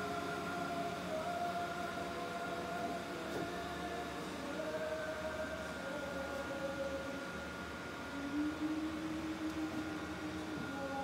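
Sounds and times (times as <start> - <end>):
electric blower fans humming: 0.0 - 11.0.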